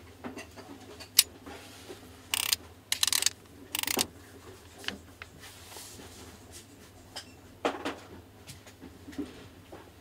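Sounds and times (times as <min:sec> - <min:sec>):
lens rings ticking and rasping: 0:02.3 - 0:04.0
camera lens click: 0:02.4 - 0:04.0.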